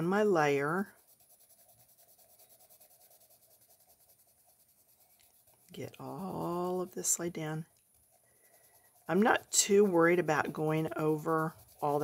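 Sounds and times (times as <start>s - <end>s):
colored pencil scratching on paper: 0.0s - 12.0s.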